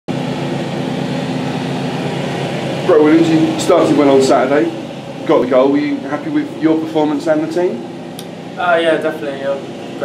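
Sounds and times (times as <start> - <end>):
ventilation hum with hiss: 0.1 - 10.0.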